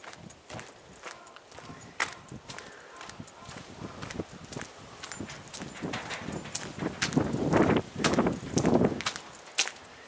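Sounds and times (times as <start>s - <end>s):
footsteps on paved street: 0.0s - 10.0s.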